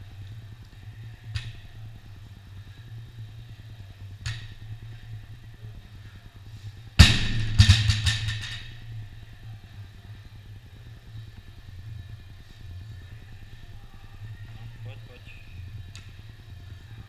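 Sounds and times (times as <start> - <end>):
steady low hum: 0.0 - 17.0
barbell banging on rubber floor: 7.0 - 8.8
barbell bouncing and rattling: 7.0 - 9.0.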